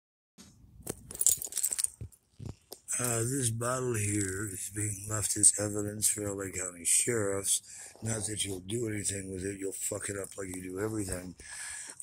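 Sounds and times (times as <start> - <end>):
small clicks and clinks: 0.9 - 3.2.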